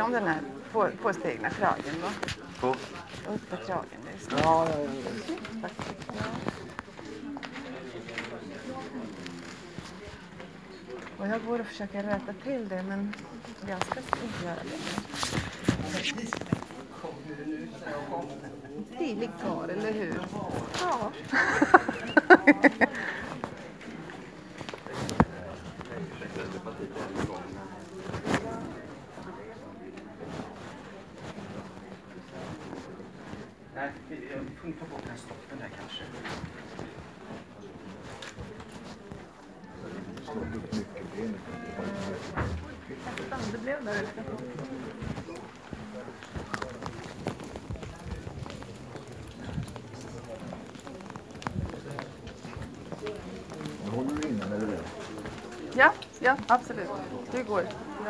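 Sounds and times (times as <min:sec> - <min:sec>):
chatter of many people: 0:00.0 - 0:58.0
indistinct background voices: 0:00.0 - 0:58.0
footsteps on hard floor: 0:41.6 - 0:44.1.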